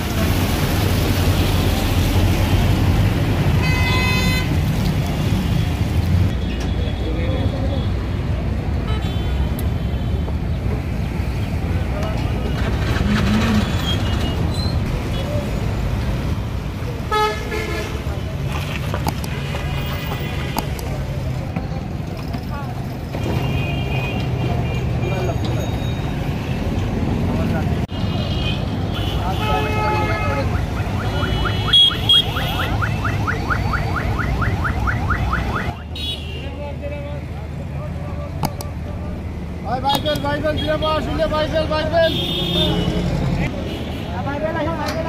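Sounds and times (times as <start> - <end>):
traffic engines and road noise: 0.0 - 45.0.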